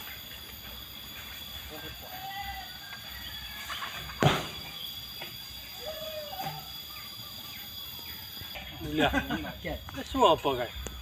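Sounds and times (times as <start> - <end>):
steady high-pitched drone: 0.0 - 11.0
faint animal calls: 1.6 - 8.8.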